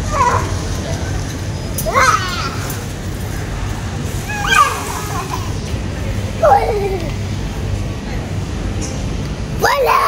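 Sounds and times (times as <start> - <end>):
steady low hum: 0.0 - 9.7
shoppers' voices: 0.0 - 10.0.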